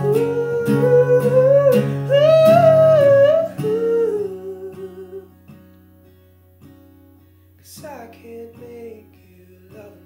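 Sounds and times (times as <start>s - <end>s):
man singing wordless vocal: 0.0s - 5.3s, 7.6s - 10.0s
strummed acoustic guitar: 0.0s - 10.0s.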